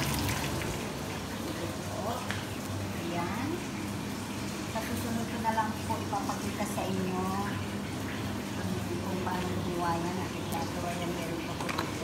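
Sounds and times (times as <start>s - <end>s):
food frying in hot oil: 0.0s - 12.0s.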